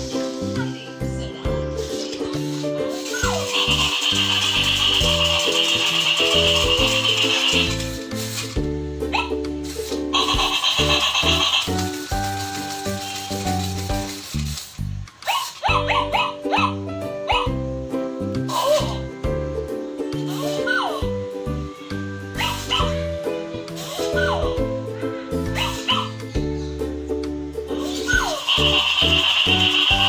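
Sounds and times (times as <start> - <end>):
music with rhythmic bass line: 2.7 - 15.1, 15.7 - 30.0.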